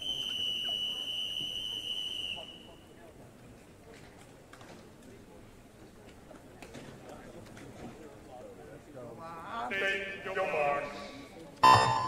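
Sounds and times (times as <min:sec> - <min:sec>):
referee's whistle long blast: 0:00.0 - 0:02.8.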